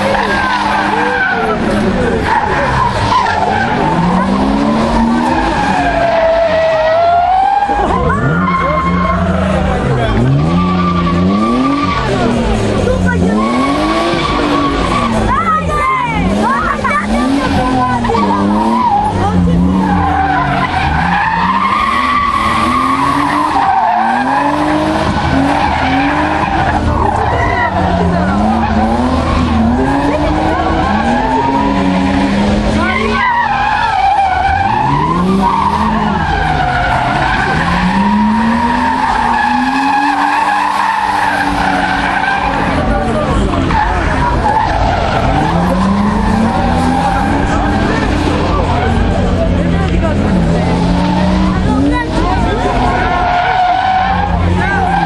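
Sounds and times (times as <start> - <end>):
car engines revving: 0.0 - 55.0.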